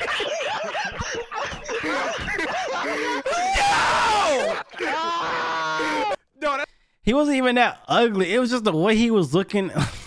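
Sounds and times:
man laughing hard: 0.0s - 6.2s.

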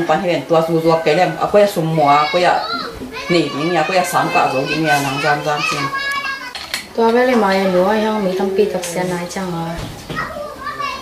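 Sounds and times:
woman and girl talking: 0.0s - 11.0s.

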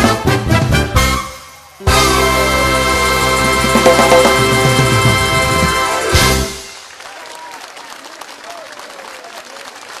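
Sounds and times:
live band final hit: 0.0s - 6.9s
audience applause: 5.0s - 10.0s.

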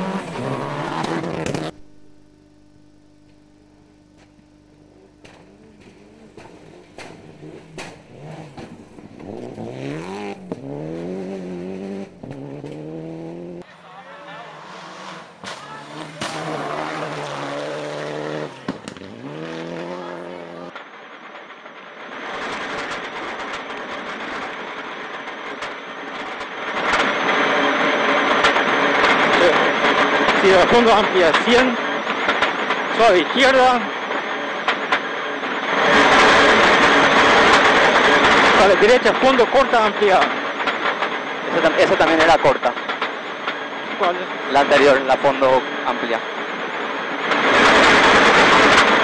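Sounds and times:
harsh engine noise inside car: 0.0s - 13.6s, 15.7s - 20.8s, 35.0s - 40.5s
rally car engines revving: 0.0s - 13.7s, 14.4s - 20.8s, 26.4s - 49.0s
gravel spray: 5.2s - 13.6s.

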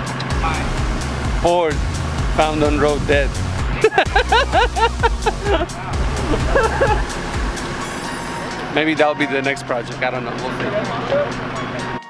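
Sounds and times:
background music with bass line: 0.0s - 12.0s
voices: 0.3s - 12.0s
laughter: 3.8s - 7.0s.

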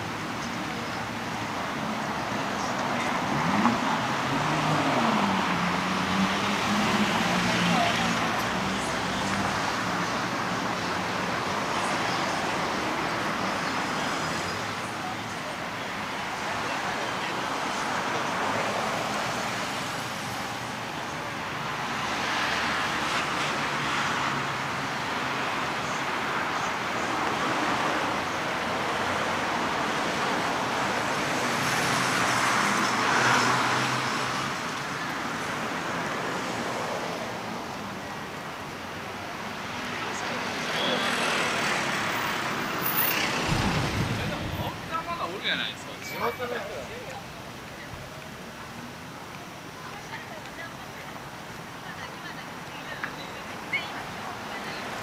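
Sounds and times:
passing cars: 0.0s - 55.0s.

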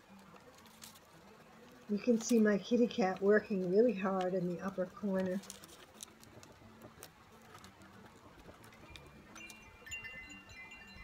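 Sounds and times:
faint high chime tones: 8.9s - 11.0s.

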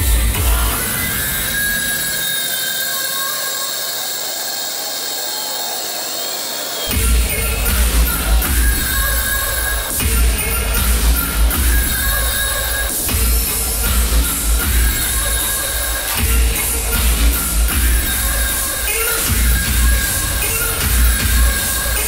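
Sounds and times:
hard kick drum beat: 0.0s - 1.4s, 6.9s - 22.0s
hardstyle dance music: 0.0s - 22.0s.

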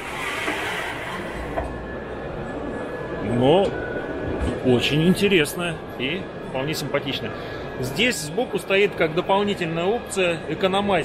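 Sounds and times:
busy exhibition hall noise: 0.0s - 11.0s.

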